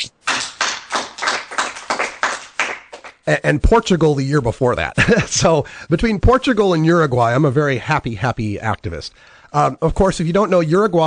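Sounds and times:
rapid hand claps: 0.2 - 3.2.

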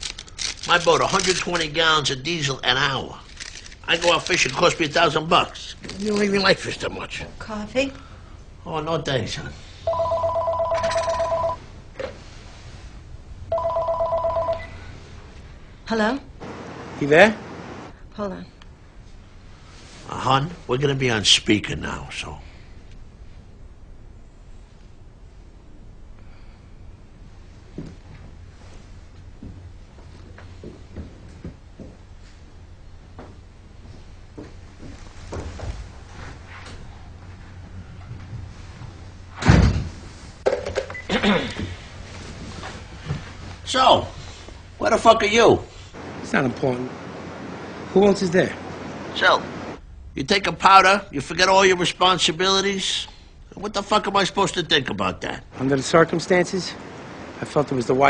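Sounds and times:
telephone ringing: 9.9 - 11.7, 13.5 - 15.0
heavy thump: 39.4 - 40.0.

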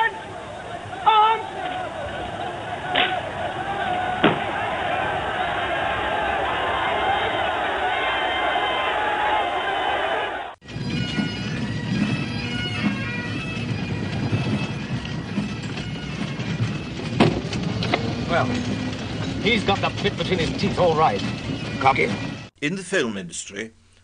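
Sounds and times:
crowd noise: 0.0 - 11.3
pipe band playing bagpipes: 10.7 - 22.4
man's voice: 21.8 - 23.8.

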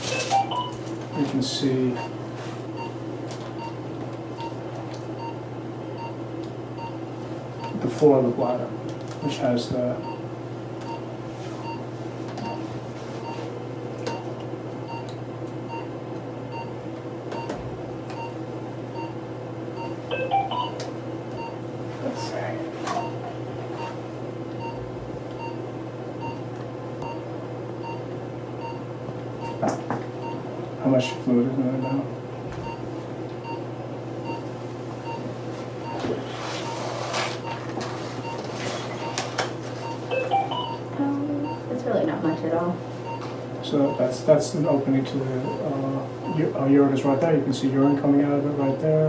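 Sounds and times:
steady electrical hum: 0.0 - 49.0
short electronic beeps: 39.9 - 40.8.

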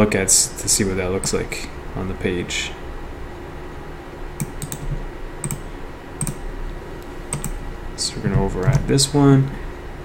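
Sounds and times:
low room hum: 0.0 - 10.0
keyboard and mouse clicks: 4.4 - 6.4, 7.3 - 7.6.

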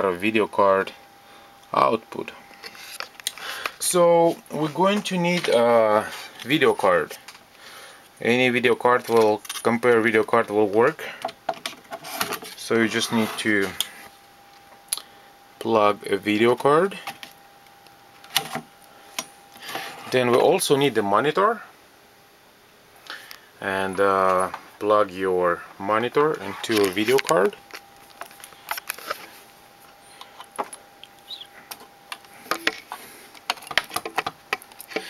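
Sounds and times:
faint steady whine: 0.0 - 35.0.

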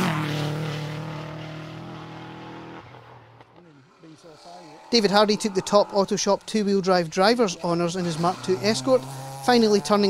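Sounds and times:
rally car passing at speed: 0.0 - 10.0.

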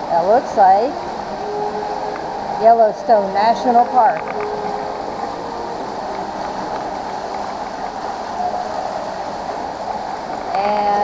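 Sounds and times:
water rushing in stream: 0.0 - 11.0.

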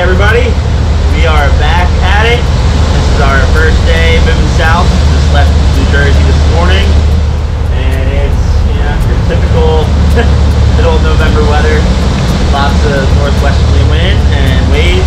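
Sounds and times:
man talking: 0.0 - 7.0, 7.7 - 15.0
boat engines droning: 0.0 - 15.0.

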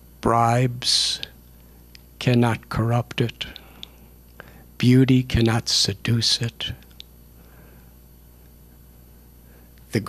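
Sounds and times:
steady low hum: 0.0 - 10.0
man's voice: 0.2 - 1.3, 2.2 - 3.6, 4.8 - 6.8.

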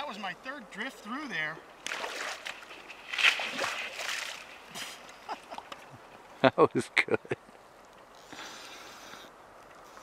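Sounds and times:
fish splashing in water: 1.8 - 4.6.

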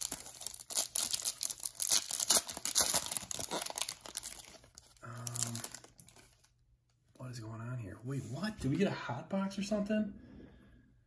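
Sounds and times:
foil wrapper crinkling and tearing: 0.0 - 6.5.

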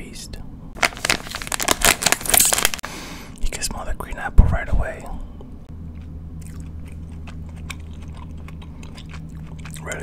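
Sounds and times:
steady low hum: 0.0 - 10.0
chewing gummy candies: 5.9 - 10.0.

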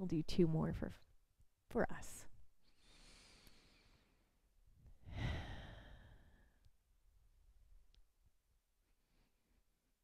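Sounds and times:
woman breathing deeply: 2.6 - 6.6.

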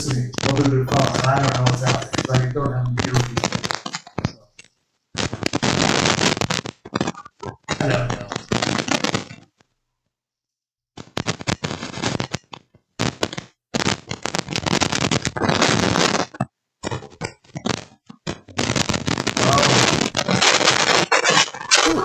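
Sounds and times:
lapel microphone crackling: 0.0 - 9.4, 11.0 - 22.0.

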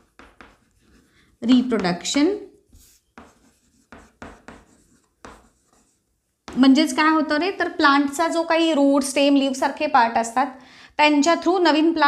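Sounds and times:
chalk scratching on chalkboard: 0.0 - 6.6.

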